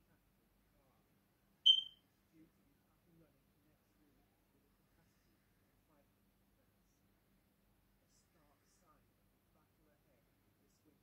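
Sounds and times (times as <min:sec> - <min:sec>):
short high-pitched beep: 0:01.7 - 0:02.0.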